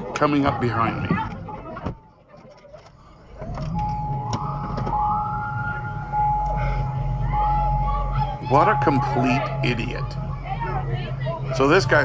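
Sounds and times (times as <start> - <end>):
low engine rumble: 0.0 - 12.0
fire truck siren wailing: 3.1 - 12.0.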